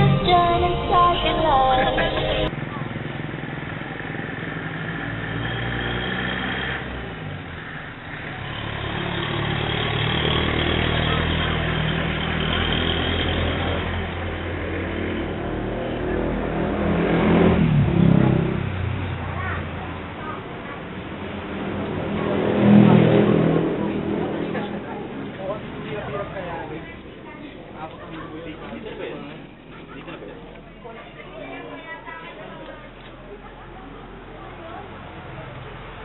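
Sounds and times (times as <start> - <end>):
background voices: 0.0 - 2.5
music: 0.0 - 2.5
road noise: 0.0 - 36.0
vehicle engine rumble: 0.0 - 36.0.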